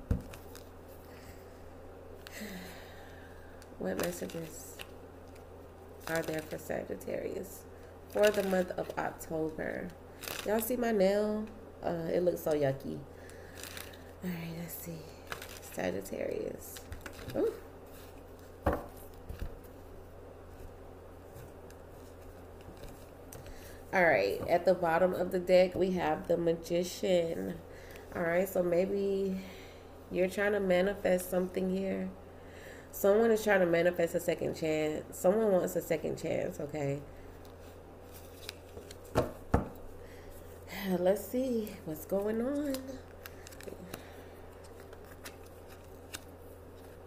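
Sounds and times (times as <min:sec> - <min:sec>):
woman speaking: 0:03.8 - 0:04.8, 0:06.0 - 0:13.1, 0:14.2 - 0:17.7, 0:23.9 - 0:32.2, 0:32.9 - 0:37.1, 0:40.7 - 0:43.1
deck knocking on table: 0:18.6 - 0:19.0, 0:39.1 - 0:39.8.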